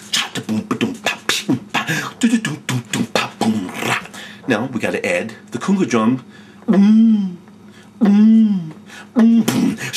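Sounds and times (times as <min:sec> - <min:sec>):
vocal beatbox: 0:00.0 - 0:04.8, 0:06.6 - 0:09.9.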